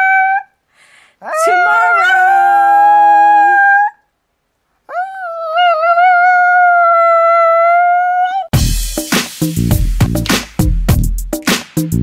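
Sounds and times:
dog howling: 0.0s - 0.5s, 1.2s - 4.0s, 4.9s - 8.5s.

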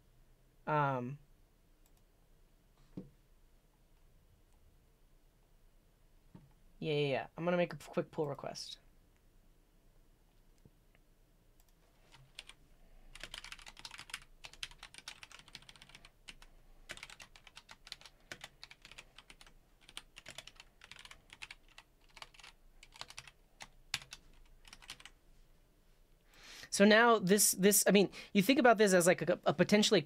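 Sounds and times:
computer keyboard typing: 11.6s - 25.2s.

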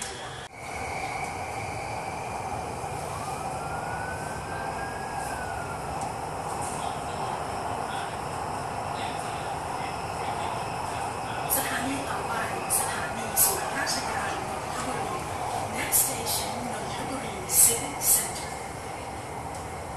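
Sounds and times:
train ride rumble: 0.0s - 19.9s.

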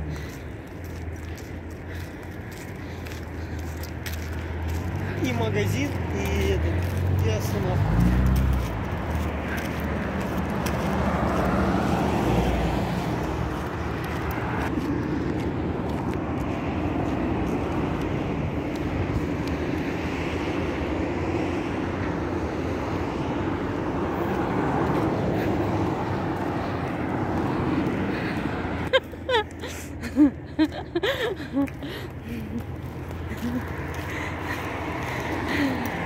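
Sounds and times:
road traffic hum: 0.0s - 36.0s.

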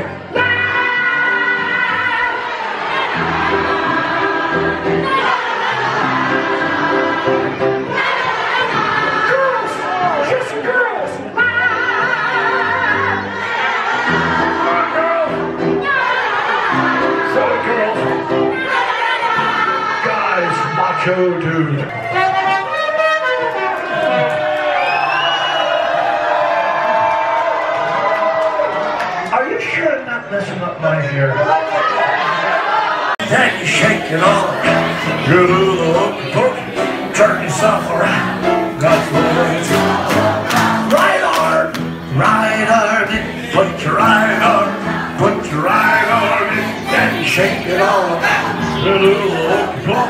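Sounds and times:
crowd singing along: 0.0s - 21.3s, 31.7s - 50.0s
live music: 0.0s - 25.0s, 33.2s - 50.0s
crowd cheering and whooping: 21.9s - 29.4s, 31.3s - 50.0s
small horn blown: 22.0s - 23.8s.

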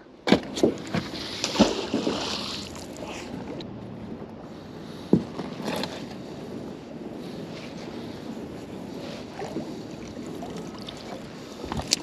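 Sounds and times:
water noise around boat: 0.0s - 12.0s
wind: 0.0s - 12.0s.

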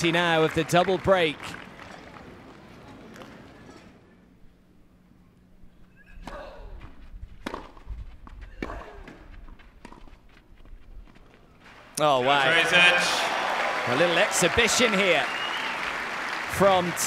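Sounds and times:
tennis racket hitting ball: 7.4s - 7.8s.

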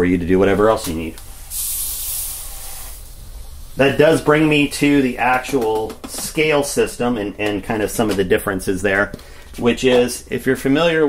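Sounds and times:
gas spraying hiss: 0.5s - 6.7s.

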